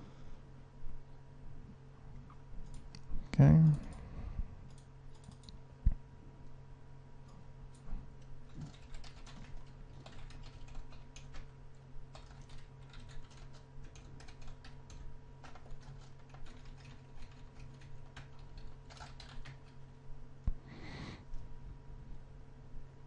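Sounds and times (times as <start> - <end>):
steady low hum: 0.0 - 23.0
typing on computer keyboard: 4.7 - 5.5, 8.5 - 11.5, 12.1 - 19.8.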